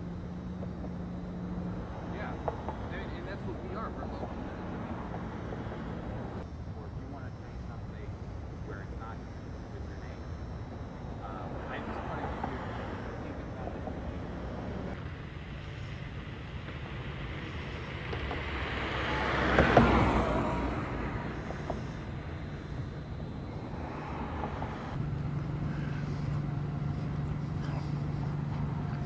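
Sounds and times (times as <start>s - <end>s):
car passing: 0.0s - 29.0s
low street rumble: 0.0s - 29.0s.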